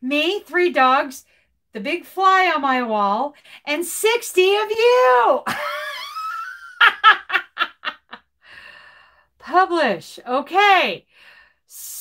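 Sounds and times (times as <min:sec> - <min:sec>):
woman laughing: 0:05.4 - 0:08.2.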